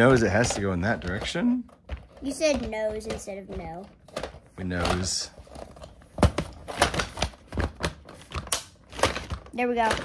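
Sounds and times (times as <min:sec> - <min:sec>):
plastic toy pieces clicking: 0:00.1 - 0:05.2.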